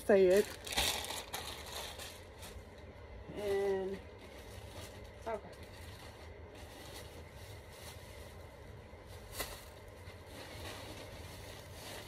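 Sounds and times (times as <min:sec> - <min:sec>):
low room hum: 0:00.0 - 0:12.0
rustling handling noise: 0:00.1 - 0:12.0.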